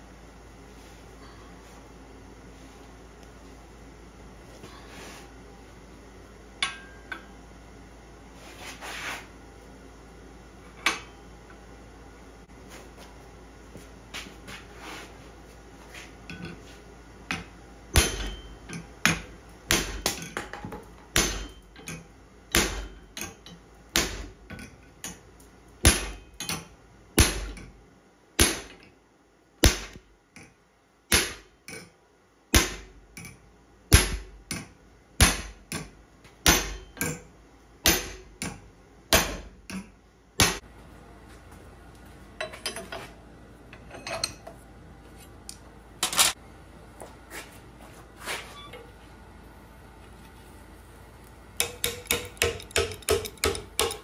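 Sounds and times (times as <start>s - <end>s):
hammer striking metal tool: 18.0s - 20.5s, 21.1s - 24.3s, 33.9s - 37.2s, 37.8s - 40.6s, 51.6s - 54.0s.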